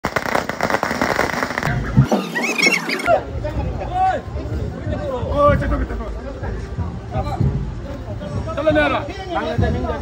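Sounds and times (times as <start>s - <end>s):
firecrackers going off: 0.0s - 3.8s.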